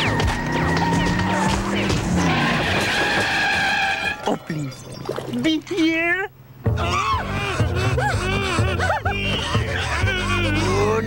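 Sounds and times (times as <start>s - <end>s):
background music: 0.0s - 5.0s, 5.9s - 11.0s
cartoon tyre screech: 2.1s - 4.4s.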